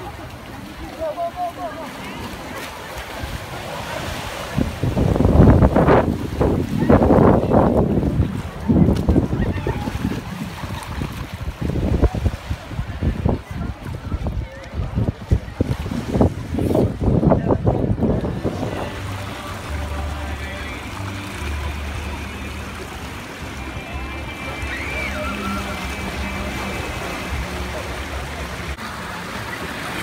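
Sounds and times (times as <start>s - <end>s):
small waves washing onto beach: 0.0s - 30.0s
wind buffeting microphone: 3.1s - 19.3s.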